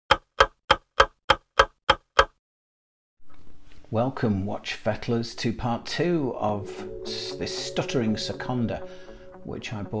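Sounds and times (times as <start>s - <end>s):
clock ticking: 0.1s - 2.4s.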